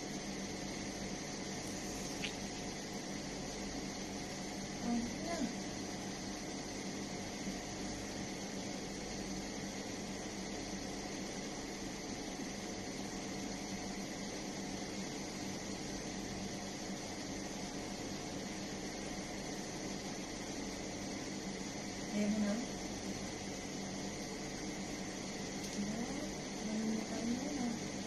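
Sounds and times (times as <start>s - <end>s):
steady hiss: 0.0s - 28.0s.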